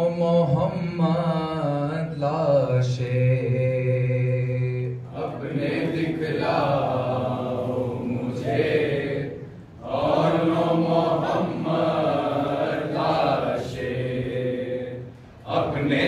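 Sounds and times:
men singing together: 5.1s - 16.0s.

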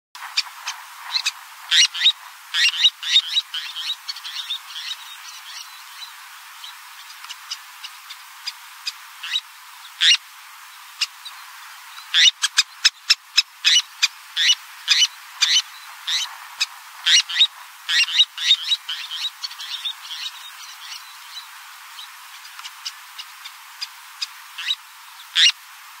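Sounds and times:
terns chirping: 0.2s - 25.6s
steady hiss: 0.2s - 26.0s.

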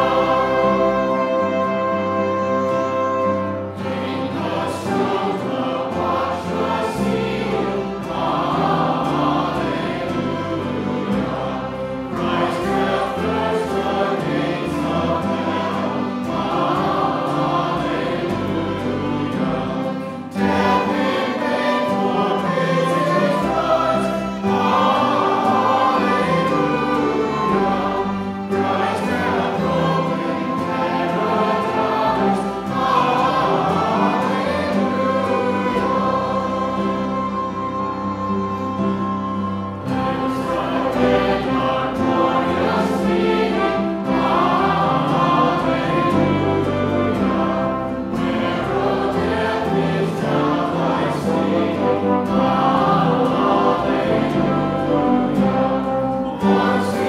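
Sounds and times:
congregation singing a hymn: 0.0s - 57.0s
piano: 0.0s - 57.0s
violins: 0.0s - 57.0s.

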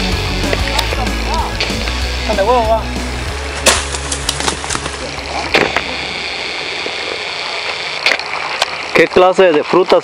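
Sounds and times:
high level buzz: 0.0s - 9.0s
outdoor background noise: 0.0s - 10.0s
palm fruits knocking and clicking: 3.6s - 5.9s.

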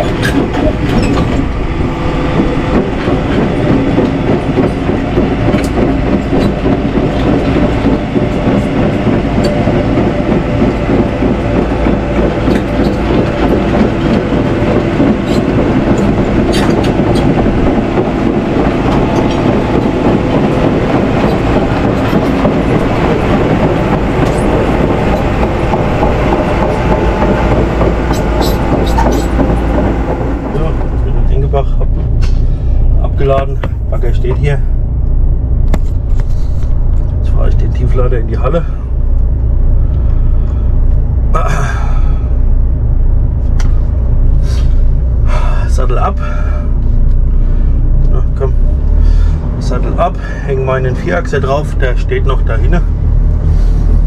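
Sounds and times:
steel tracks clattering: 0.0s - 42.4s
diesel engine running: 0.0s - 54.0s
metal clanks: 24.1s - 30.9s.

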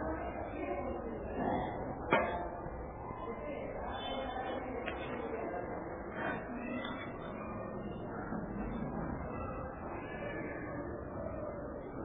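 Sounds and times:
muffled background noise: 0.0s - 12.0s.

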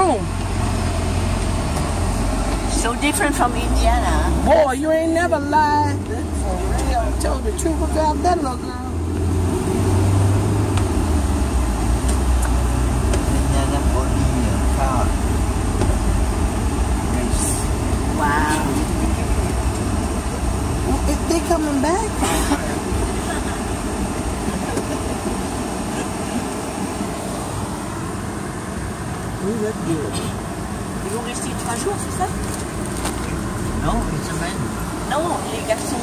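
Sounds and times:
car engine rumble: 0.0s - 36.0s
road noise: 0.0s - 36.0s.

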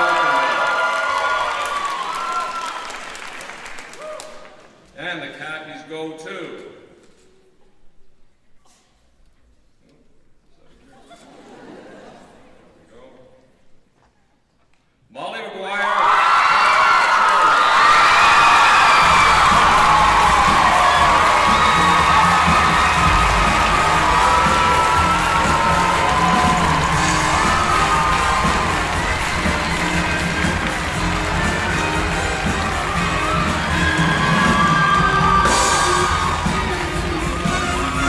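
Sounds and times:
audience cheering and screaming: 0.0s - 4.5s, 15.8s - 38.0s
band playing music: 18.5s - 38.0s.

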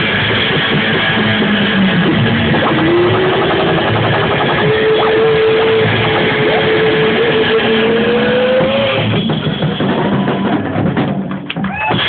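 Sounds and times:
electric guitar sliding notes: 0.0s - 10.2s
rock band music: 0.0s - 12.0s.

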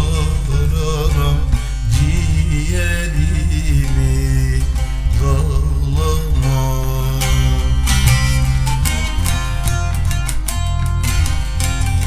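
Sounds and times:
plucked string melody: 0.0s - 12.0s
steady pulsing beat: 0.0s - 12.0s
sustained bass notes: 0.0s - 12.0s.

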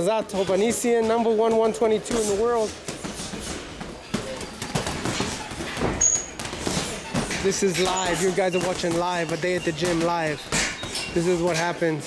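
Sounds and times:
gloves punching heavy bag: 0.3s - 11.6s.

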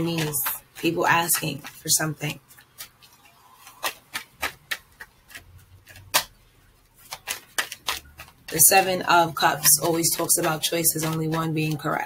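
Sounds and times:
cards clicking and tapping: 0.0s - 12.0s.

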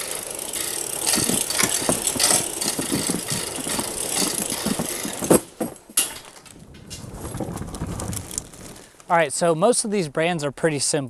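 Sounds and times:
metal roll-up door rattling open: 0.0s - 8.2s.

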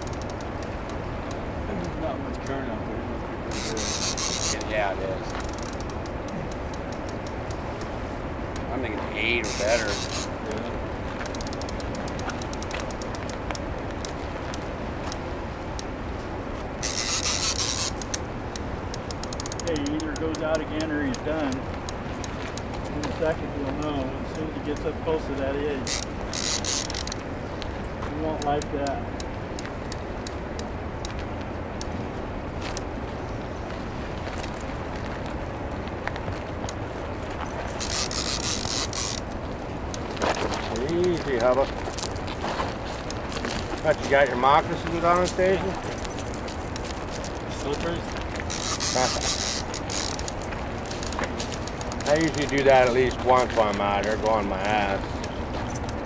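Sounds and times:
fishing reel drag whirring: 0.0s - 1.0s, 3.5s - 7.9s, 9.2s - 10.5s, 11.2s - 13.4s, 16.8s - 18.3s, 18.9s - 21.6s, 25.8s - 27.2s, 36.7s - 40.0s, 46.7s - 53.4s
river water rushing: 0.0s - 19.6s, 21.6s - 53.7s.

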